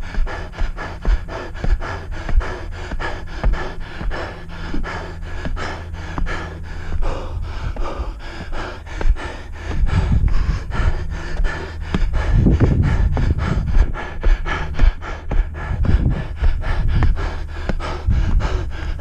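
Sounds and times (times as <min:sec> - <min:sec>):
footfalls on steps: 0:00.0 - 0:19.0
runner panting: 0:00.0 - 0:19.0.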